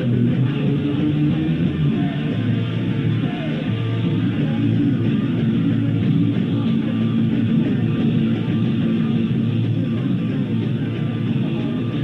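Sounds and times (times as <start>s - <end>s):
electric guitar: 0.0s - 12.0s
punk rock band playing live: 0.0s - 12.0s.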